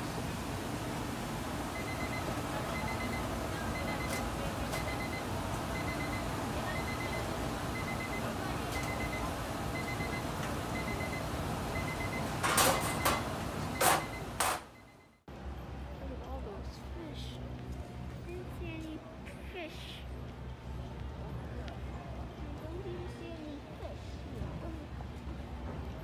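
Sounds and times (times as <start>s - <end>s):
steaming cooker hiss and hum: 0.0s - 14.4s
kitchen timer beeping: 1.7s - 15.2s.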